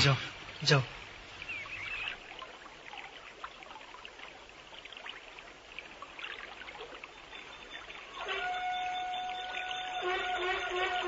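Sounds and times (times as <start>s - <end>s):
trickling stream water: 0.0s - 11.0s
steady held tone: 7.1s - 11.0s.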